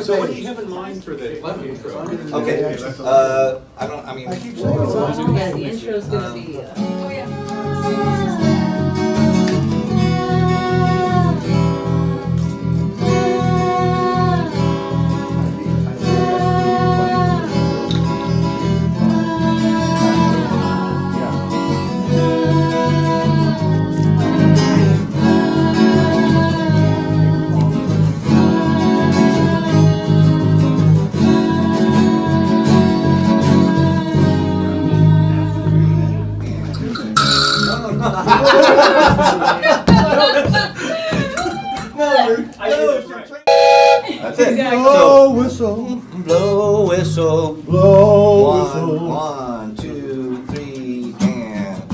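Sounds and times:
acoustic guitar: 3.7s - 42.6s, 43.5s - 51.9s
electric bass: 8.3s - 38.2s
sliding lead melody: 43.5s - 44.2s.

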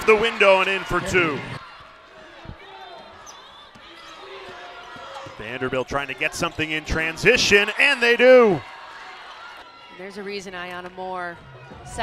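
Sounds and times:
faint arena background: 0.0s - 12.0s.

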